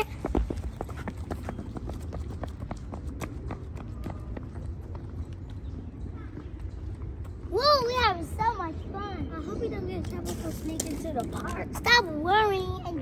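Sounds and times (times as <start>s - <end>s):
running footsteps: 0.0s - 7.6s
steady low rumble: 0.0s - 13.0s.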